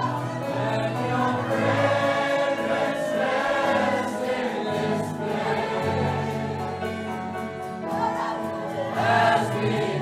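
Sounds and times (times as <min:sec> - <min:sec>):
choir singing: 0:00.0 - 0:10.0
sustained instrumental accompaniment: 0:00.0 - 0:10.0.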